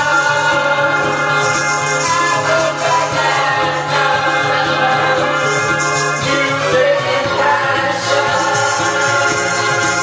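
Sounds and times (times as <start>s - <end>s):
loud backing music: 0.0s - 10.0s
man and woman singing: 0.0s - 10.0s.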